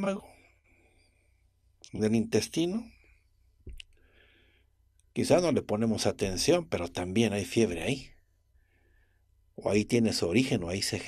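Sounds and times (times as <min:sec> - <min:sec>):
man speaking: 0:00.0 - 0:00.4, 0:01.9 - 0:02.9, 0:05.2 - 0:08.1, 0:09.6 - 0:11.0
man's mouth click: 0:03.7 - 0:04.0
man breathing in softly: 0:03.9 - 0:04.8, 0:08.5 - 0:09.3.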